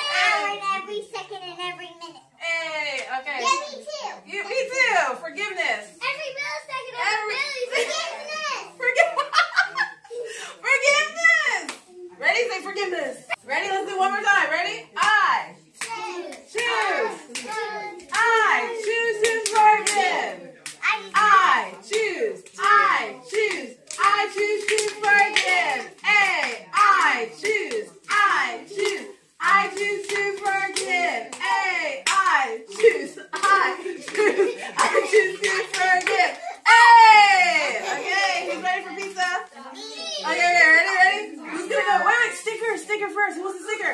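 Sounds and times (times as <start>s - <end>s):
children chattering excitedly: 0.0s - 2.4s, 3.3s - 4.8s, 5.9s - 12.8s, 15.6s - 43.9s
hand claps and slaps: 11.6s - 11.9s, 15.8s - 21.3s, 21.9s - 36.6s.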